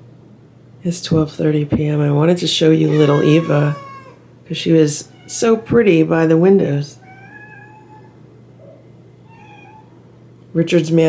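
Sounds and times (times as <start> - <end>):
cat meowing: 2.8 - 4.3, 7.0 - 8.2, 9.2 - 10.0.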